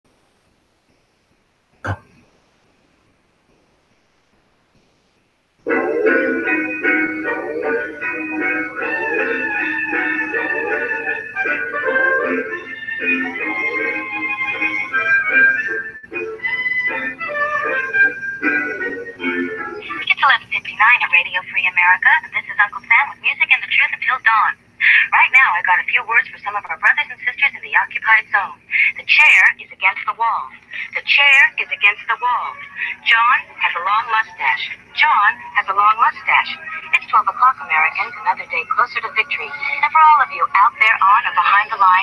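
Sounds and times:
music: 5.6s - 22.2s, 31.4s - 42.0s
tinny voice over a radio: 20.0s - 42.0s.

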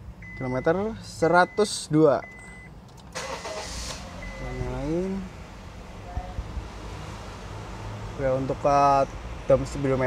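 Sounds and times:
car engine starting and running: 0.0s - 10.0s.

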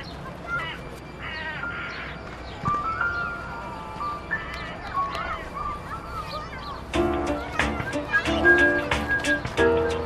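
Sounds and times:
music melody: 6.8s - 10.0s.

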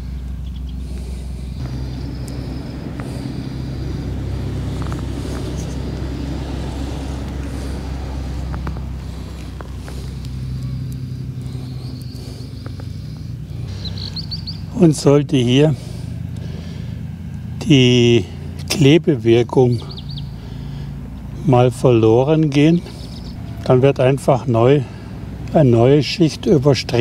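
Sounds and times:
road traffic engine rumble: 0.0s - 27.0s.

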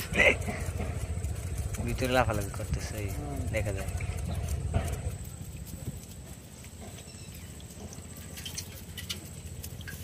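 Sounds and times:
low steady rumble: 0.0s - 10.0s
faint water dripping: 5.2s - 10.0s
bamboo fish trap clicks and rustles: 7.6s - 10.0s.

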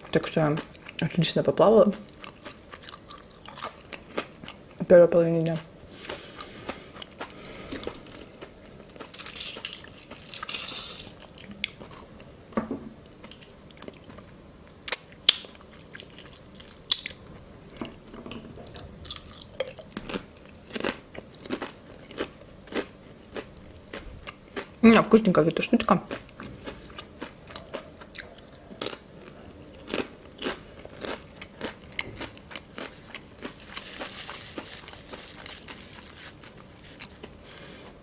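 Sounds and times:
chewing crunchy potato chips: 1.8s - 4.8s, 5.5s - 12.3s, 14.9s - 17.2s, 18.6s - 24.9s, 26.0s - 37.4s.

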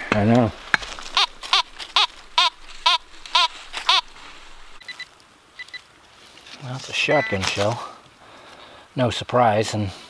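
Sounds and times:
metal detector warbling tone: 7.1s - 7.6s
short high beeps: 7.1s - 7.6s.

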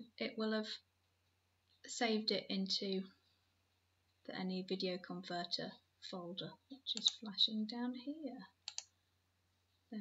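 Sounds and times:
person speaking: 4.2s - 8.9s
computer mouse clicks: 6.9s - 7.3s, 8.6s - 9.0s.

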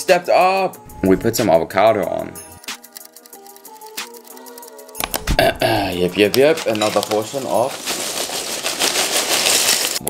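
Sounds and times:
cornflakes pouring into a bowl: 6.2s - 10.0s.

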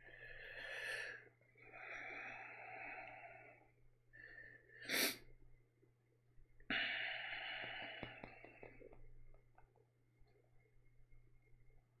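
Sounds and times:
man breathing heavily: 0.0s - 5.2s
sharp burst of breath: 4.2s - 5.3s.

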